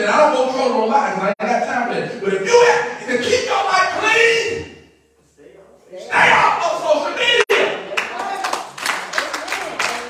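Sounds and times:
voices: 0.0s - 10.0s
preacher's raised voice: 1.7s - 4.8s
congregation hand clapping: 7.9s - 10.0s.

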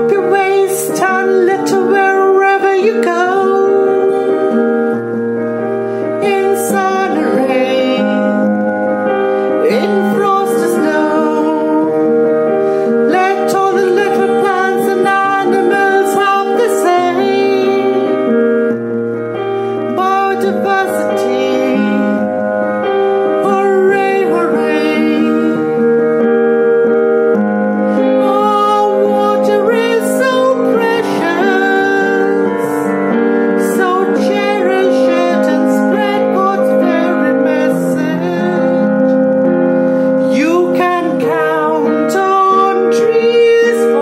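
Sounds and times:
keyboard accompaniment: 0.0s - 44.0s
person singing long held notes: 0.0s - 44.0s.

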